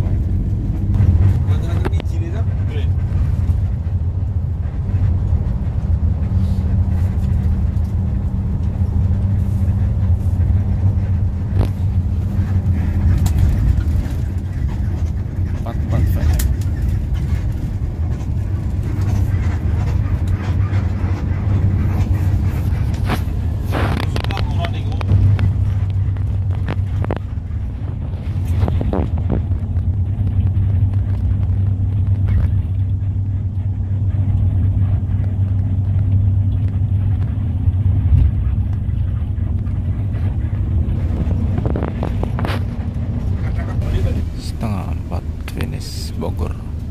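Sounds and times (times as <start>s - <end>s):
bus engine and road noise: 0.0s - 46.9s.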